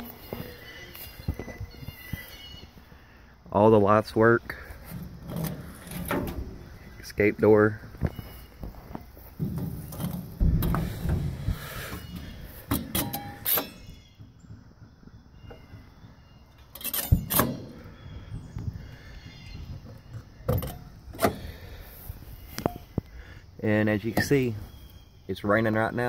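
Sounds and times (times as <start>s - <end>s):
low rumbling handling noise: 4.5s - 25.0s
trailer doors knocking and clanking: 4.9s - 7.0s, 8.9s - 16.0s, 19.6s - 21.6s.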